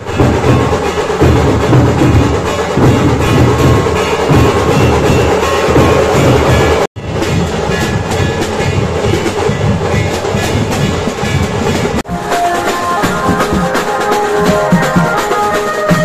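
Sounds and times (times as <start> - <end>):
massed barrel drums beating: 0.0 - 16.0.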